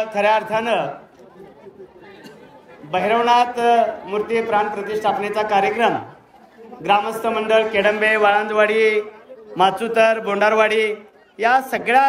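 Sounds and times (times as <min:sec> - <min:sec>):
faint chatter of people: 0:00.0 - 0:12.0
loud speech: 0:00.0 - 0:12.0.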